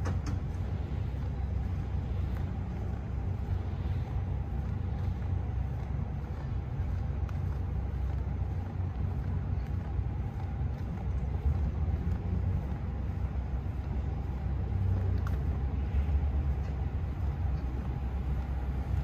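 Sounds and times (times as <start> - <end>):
low street rumble: 0.0 - 19.0.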